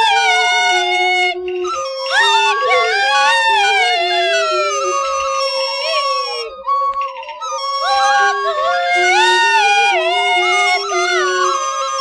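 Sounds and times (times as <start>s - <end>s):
shrill reed wind instrument: 0.0s - 12.0s.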